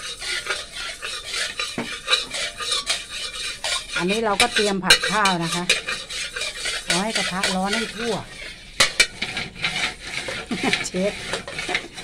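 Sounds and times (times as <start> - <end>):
metal spatula scraping wok: 0.0 - 12.0.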